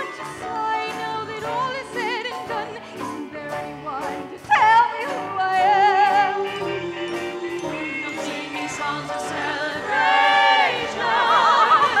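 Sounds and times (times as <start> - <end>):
operatic singing with vibrato: 0.0 - 12.0
sustained accompaniment: 5.9 - 12.0.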